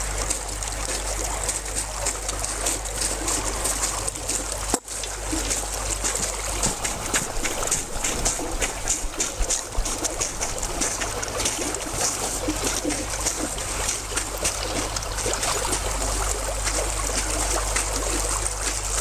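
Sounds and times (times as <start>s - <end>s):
water sloshing and trickling: 0.0s - 19.0s.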